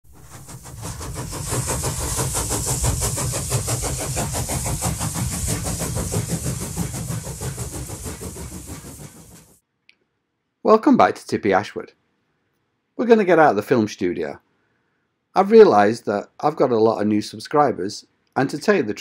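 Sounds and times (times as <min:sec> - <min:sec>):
engine running: 0:00.1 - 0:09.6.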